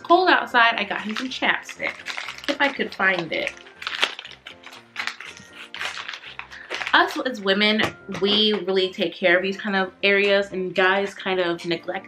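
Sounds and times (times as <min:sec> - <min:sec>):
small items rummaged by hand: 0:00.7 - 0:08.7.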